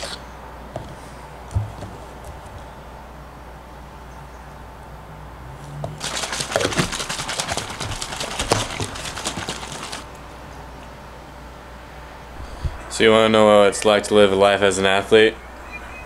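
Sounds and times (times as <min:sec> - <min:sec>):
water bottle shaken rattling slosh: 0:06.0 - 0:10.1.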